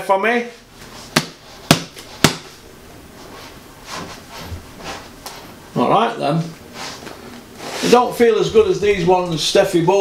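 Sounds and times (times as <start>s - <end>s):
slaps on a boxing glove: 1.2s - 2.5s.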